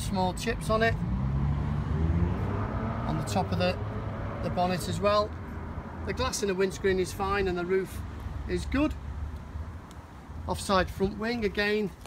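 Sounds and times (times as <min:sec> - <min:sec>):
faint traffic noise: 0:00.0 - 0:12.0
vehicle engine rumbling: 0:00.0 - 0:12.0.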